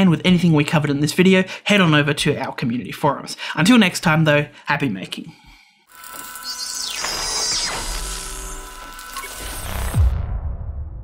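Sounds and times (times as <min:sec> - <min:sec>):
deep hit: 0:09.7 - 0:11.0.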